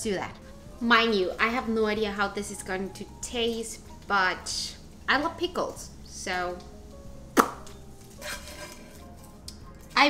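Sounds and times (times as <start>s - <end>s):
soft scrape: 8.2s - 9.0s.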